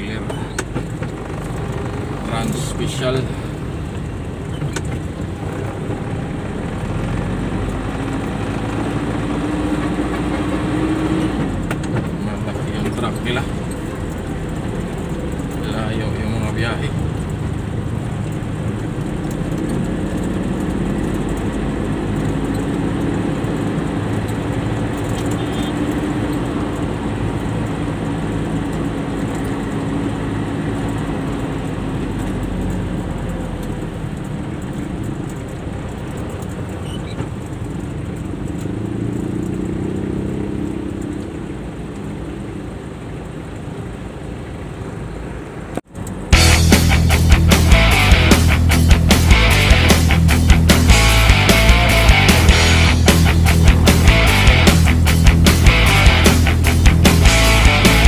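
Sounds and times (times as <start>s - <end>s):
truck engine droning: 0.0s - 58.0s.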